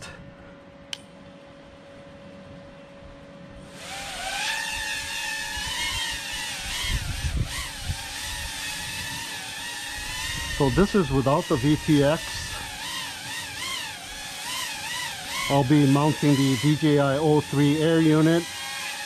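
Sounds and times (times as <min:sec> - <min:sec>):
drone motors whining: 0:03.6 - 0:19.0.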